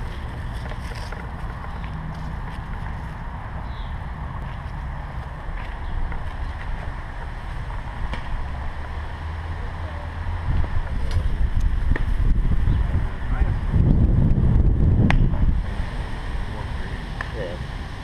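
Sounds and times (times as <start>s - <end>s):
wind rumbling on microphone: 0.0s - 18.0s.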